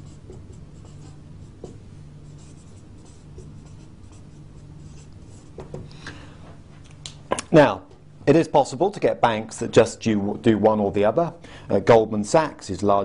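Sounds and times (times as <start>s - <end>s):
marker pen writing on whiteboard: 0.0s - 5.8s.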